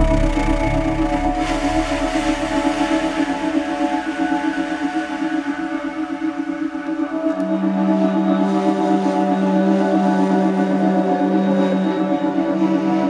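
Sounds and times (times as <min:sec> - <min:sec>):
ambient music with sustained chords: 0:00.0 - 0:13.0
pulsing low drone: 0:00.0 - 0:13.0.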